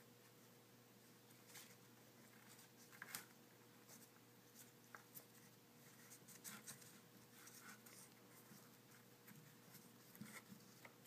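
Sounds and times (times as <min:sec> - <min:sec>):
cord rustling and scraping: 0:01.3 - 0:11.0.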